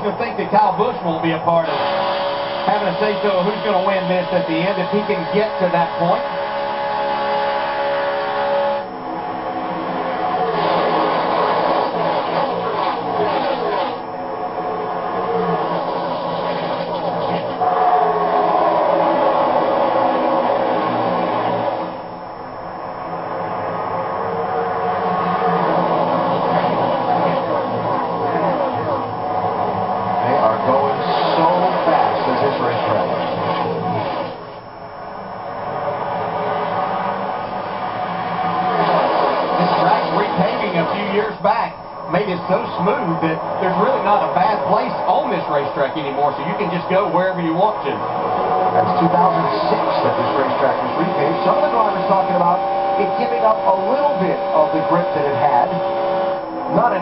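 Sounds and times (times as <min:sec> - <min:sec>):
race car engines passing: 0:01.3 - 0:22.0, 0:23.3 - 0:34.4, 0:35.5 - 0:57.0.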